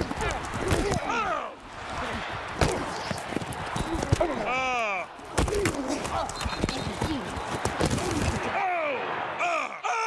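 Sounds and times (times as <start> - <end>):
football pads and helmets colliding: 0.0 - 1.3, 2.4 - 4.6, 5.2 - 8.7
stadium crowd noise: 0.0 - 10.0.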